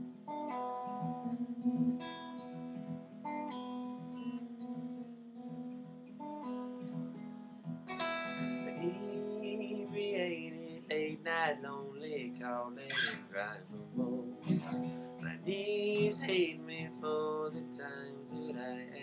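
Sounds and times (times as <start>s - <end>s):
acoustic guitar strumming: 0.0s - 19.0s
person singing: 8.4s - 19.0s.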